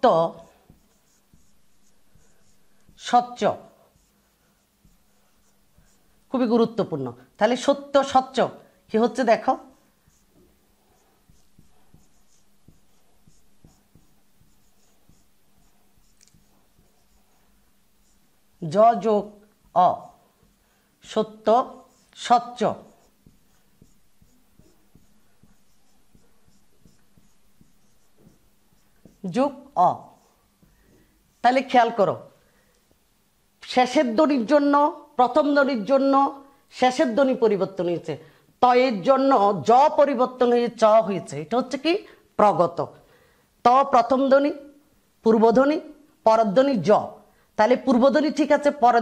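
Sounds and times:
marker pen on whiteboard: 0.0 - 42.9, 43.7 - 49.0.

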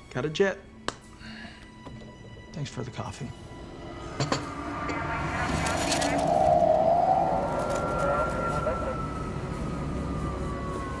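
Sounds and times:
police siren wailing: 3.5 - 11.0.

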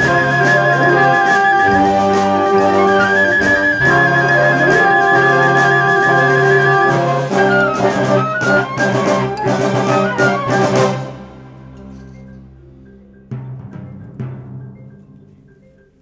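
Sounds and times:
wind ensemble playing: 0.0 - 12.1
percussion hits: 0.0 - 16.0.

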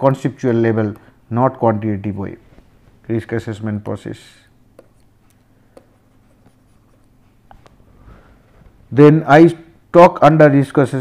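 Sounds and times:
stylus tapping on tablet screen: 4.7 - 7.8.

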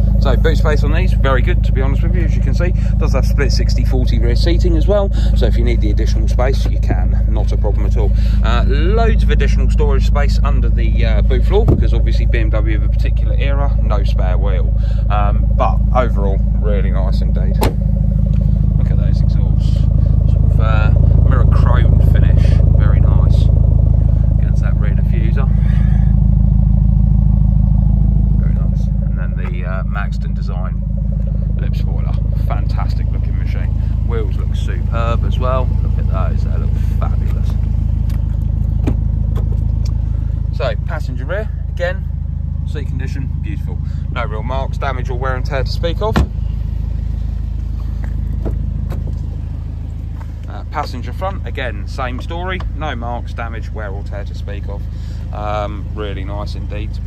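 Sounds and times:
car engine idling: 0.0 - 57.0
thump: 11.6 - 11.9, 17.6 - 17.9, 46.1 - 46.4.

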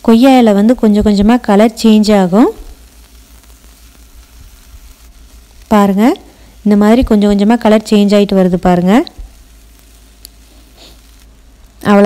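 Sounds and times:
leaves sizzling in oil: 0.0 - 12.0
spatula turning food in pan: 0.2 - 12.0.

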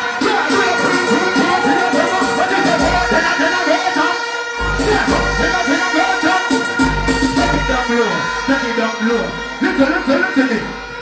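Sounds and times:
dancehall backing track: 0.0 - 11.0.

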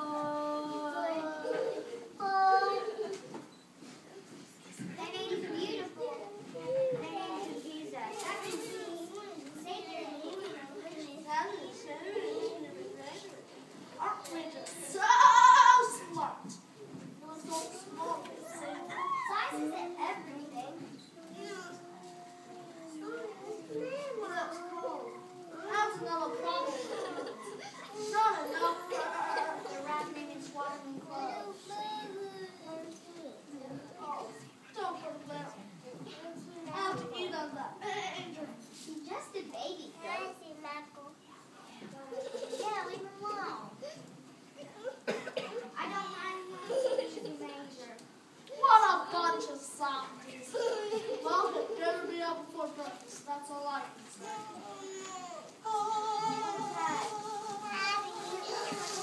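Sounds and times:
children speaking: 0.0 - 59.0.

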